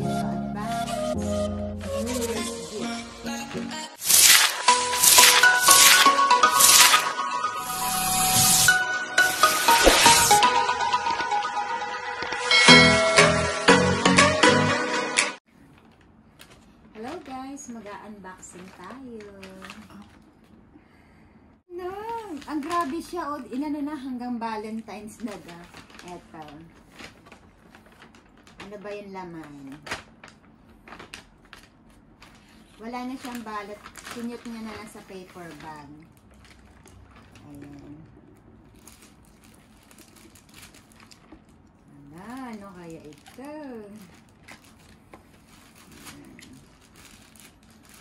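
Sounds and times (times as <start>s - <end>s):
intro music: 0.0s - 15.4s
plastic bag rustling: 4.0s - 7.3s, 8.0s - 10.5s, 15.6s - 20.3s, 21.8s - 23.7s, 24.5s - 48.0s.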